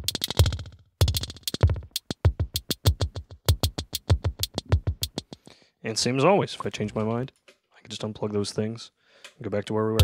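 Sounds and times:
fast electronic drum beat: 0.0s - 5.4s.

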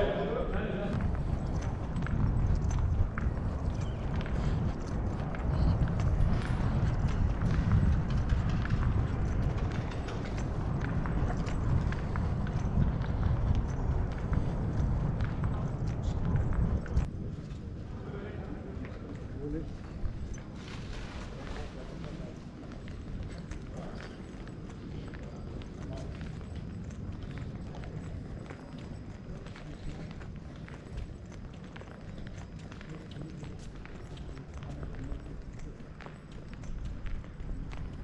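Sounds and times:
footsteps on stone: 0.0s - 17.8s, 18.7s - 38.0s
wind rumbling on microphone: 0.0s - 38.0s.

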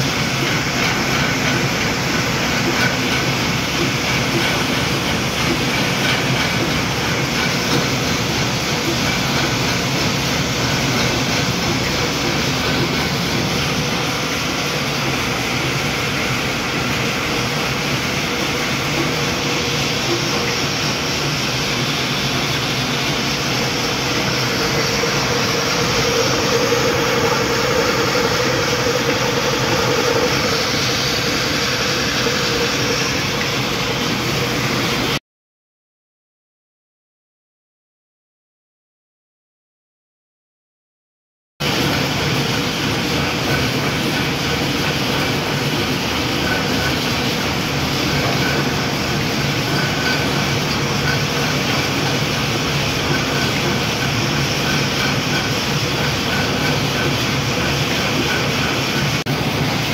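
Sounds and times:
flour mill running: 0.0s - 35.2s, 41.6s - 59.9s
machine hum: 0.0s - 35.2s.

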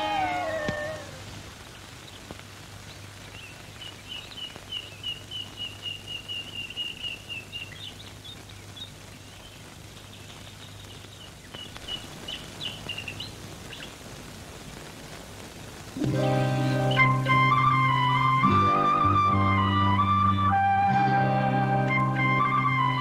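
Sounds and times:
bird chirping rapidly: 3.3s - 14.0s.

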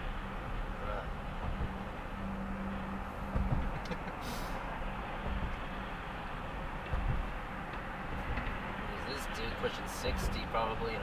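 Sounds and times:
car road and engine noise: 0.0s - 11.0s
low thumps: 1.3s - 4.2s, 4.9s - 8.8s.

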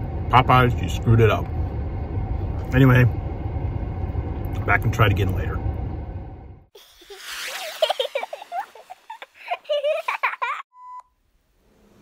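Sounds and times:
high-pitched chipmunk voice giggling: 6.8s - 10.6s.

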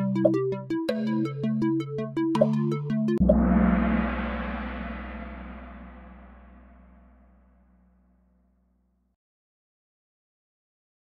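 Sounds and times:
gong-like chime ringing: 3.2s - 7.5s.

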